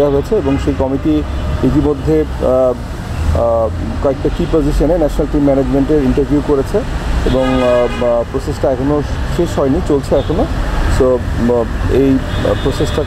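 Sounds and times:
man speaking into microphones: 0.0 - 13.0.

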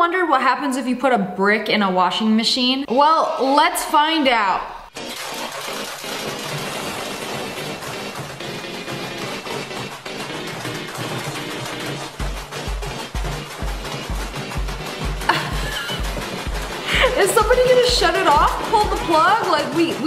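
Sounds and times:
washing machine banging and clattering: 5.0 - 20.0
music with bass beat: 5.1 - 20.0.

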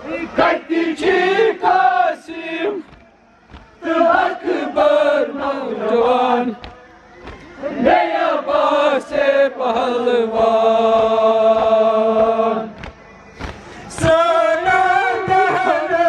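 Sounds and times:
mourners' voices joining in: 0.0 - 16.0
faint chest-beating thuds: 2.3 - 15.6.

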